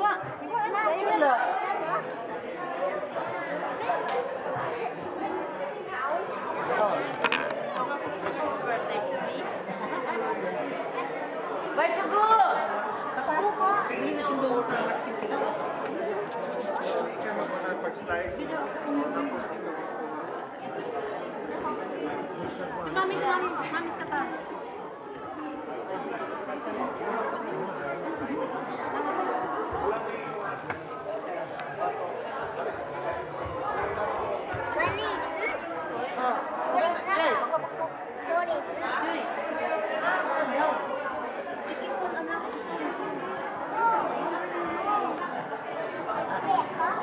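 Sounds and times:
chatter of many voices: 0.0 - 47.0.

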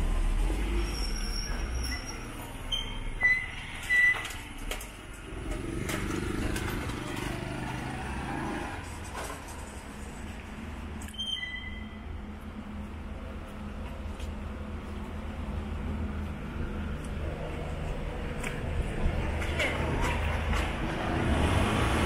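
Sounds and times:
car engine rumble passing: 4.5 - 11.0, 12.2 - 22.0.

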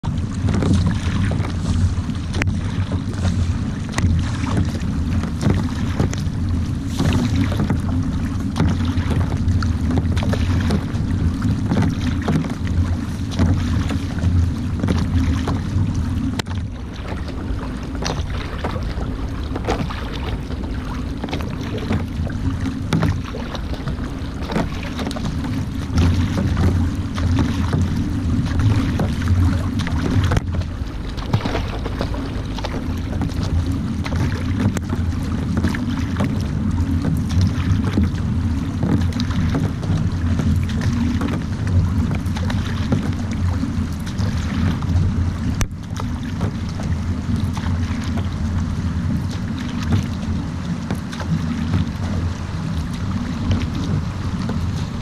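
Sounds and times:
paddle blades splashing water: 0.0 - 55.0
water rushing along hull: 0.0 - 55.0
wind rumble on microphone: 0.0 - 55.0.

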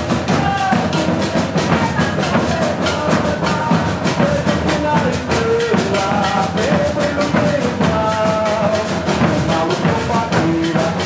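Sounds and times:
bass and snare drumming: 0.0 - 11.0
voices singing: 0.0 - 11.0.

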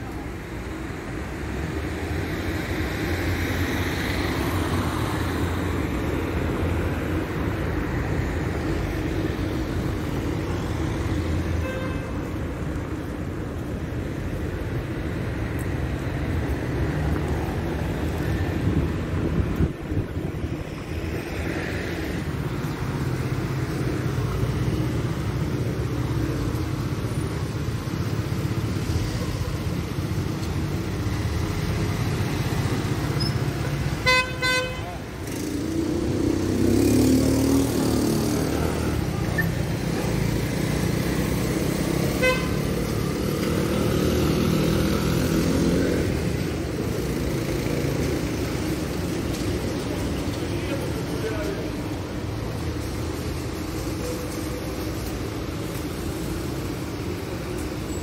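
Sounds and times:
street traffic: 0.0 - 58.0
car horn honking: 34.0 - 34.9, 42.2 - 42.6
vehicle engine passing: 35.3 - 39.2.

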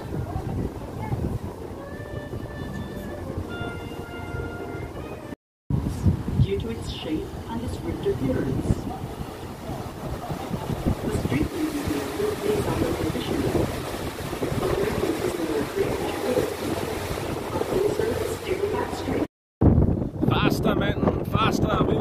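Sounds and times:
rushing water: 0.0 - 19.9
wind noise: 0.0 - 22.0.

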